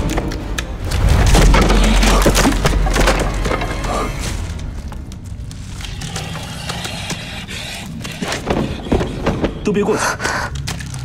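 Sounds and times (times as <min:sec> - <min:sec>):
wood cracking and splintering: 0:00.0 - 0:11.0.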